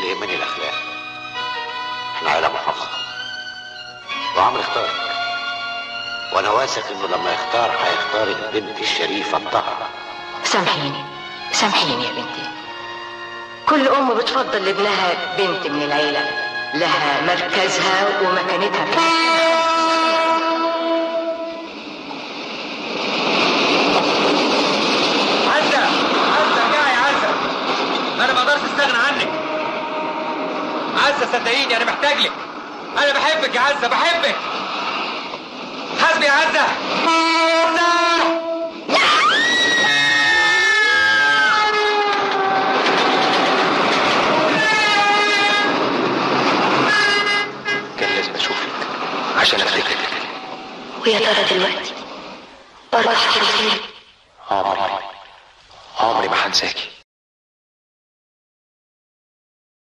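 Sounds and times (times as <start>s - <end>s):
oncoming train rushing: 0.0s - 54.4s
train horn: 17.4s - 22.1s, 28.9s - 31.5s, 36.7s - 48.9s.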